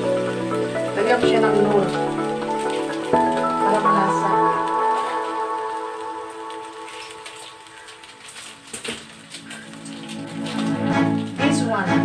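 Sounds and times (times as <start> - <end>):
meat sizzling in a pan: 0.0 - 11.4
background music: 0.0 - 12.0.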